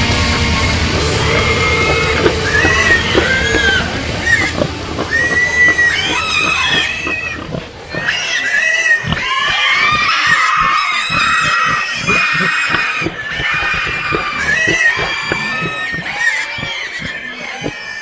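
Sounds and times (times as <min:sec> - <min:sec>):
drums and distorted guitars: 0:00.0 - 0:08.2, 0:09.0 - 0:17.8
high-pitched squealing vocals: 0:01.0 - 0:18.0.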